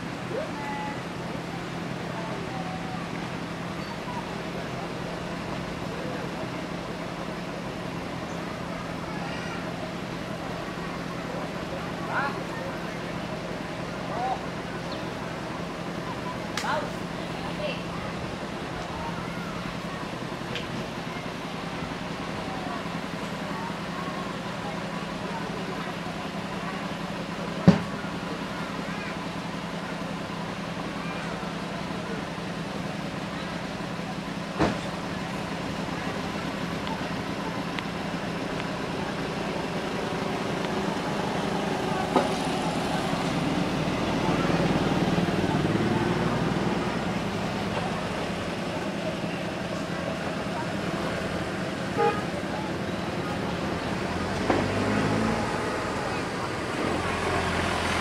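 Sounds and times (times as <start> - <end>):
indistinct background voices: 0.0 - 58.0.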